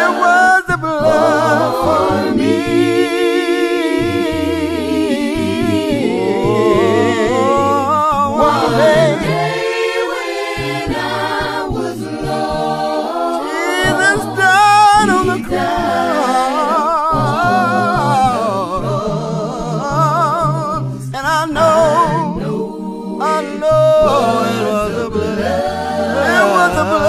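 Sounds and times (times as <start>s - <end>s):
voices singing a hymn a cappella: 0.0s - 27.0s.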